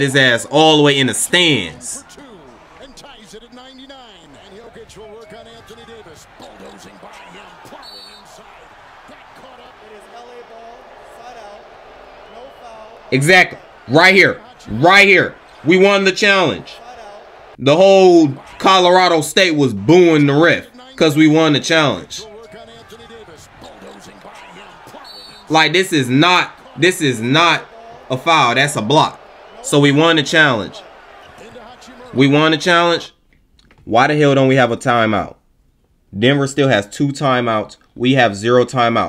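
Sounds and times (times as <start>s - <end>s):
arena crowd noise: 0.0s - 33.1s
commentator talking: 0.0s - 33.1s.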